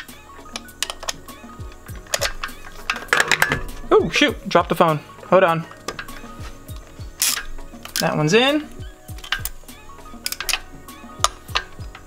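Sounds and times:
ratchet clicking: 0:00.0 - 0:03.7, 0:05.8 - 0:08.2, 0:08.8 - 0:12.0
phone dropped clattering: 0:02.2 - 0:03.9.

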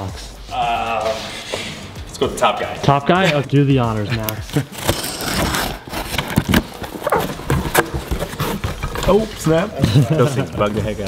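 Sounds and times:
box cutter slitting tape: 0:04.2 - 0:09.0.

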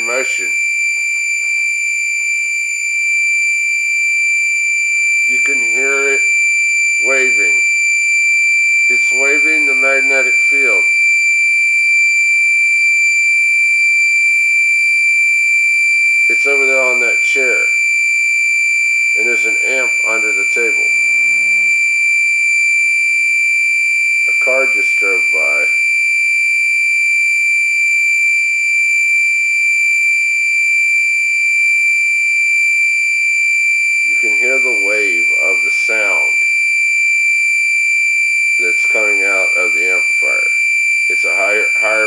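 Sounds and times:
high-pitched electronic tone: 0:18.9 - 0:25.4.

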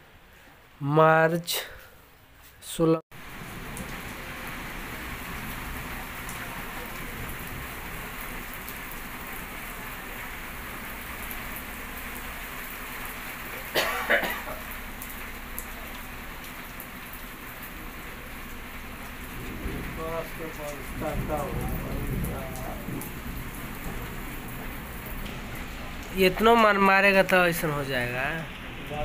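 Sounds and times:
rain falling on dirt road: 0:03.1 - 0:29.0.

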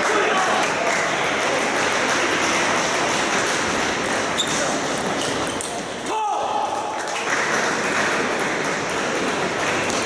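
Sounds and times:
murmur of large hall: 0:00.0 - 0:10.0.

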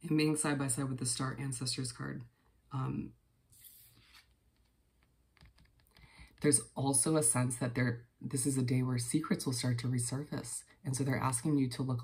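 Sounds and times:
cards handled on table: 0:03.5 - 0:06.1.

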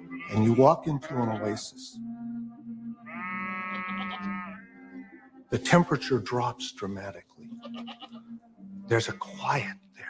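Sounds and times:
goat bleating: 0:00.0 - 0:01.6, 0:03.1 - 0:05.2, 0:07.5 - 0:08.3
low music drone: 0:00.0 - 0:10.0.

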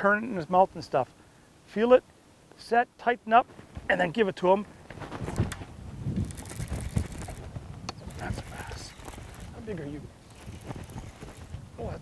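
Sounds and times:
wind rumbling on microphone: 0:04.9 - 0:12.0
fishing reel ticking: 0:06.2 - 0:11.6.

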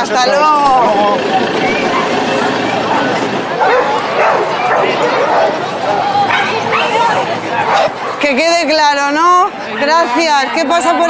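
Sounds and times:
people talking: 0:00.0 - 0:11.0
dogs yipping and barking: 0:03.5 - 0:08.5.

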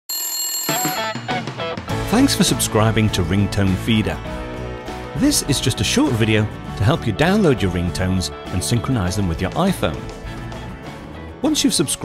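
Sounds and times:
bright ringing tone: 0:00.1 - 0:01.6.

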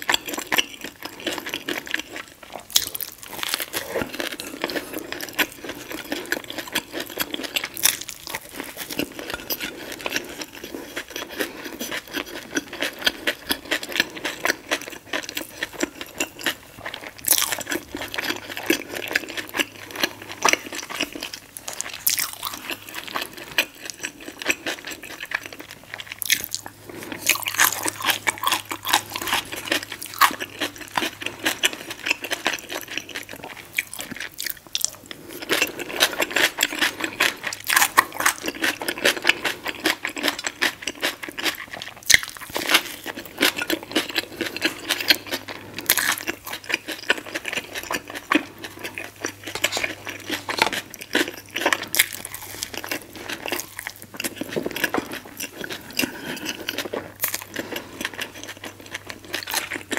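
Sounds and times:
person chewing crunchy food: 0:00.0 - 0:59.9.

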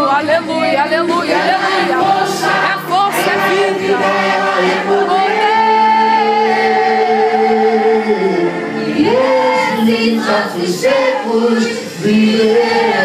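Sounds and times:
congregation singing: 0:00.5 - 0:13.0.

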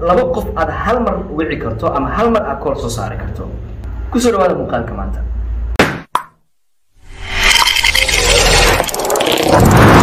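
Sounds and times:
short pop: 0:05.8 - 0:06.4.

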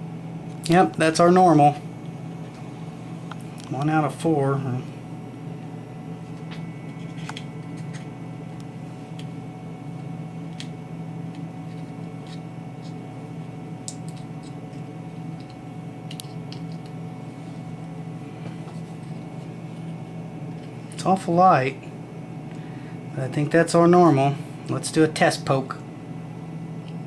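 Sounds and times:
steady low hum: 0:00.0 - 0:27.0
fingers handling eggshell: 0:06.3 - 0:09.4, 0:10.4 - 0:17.0.

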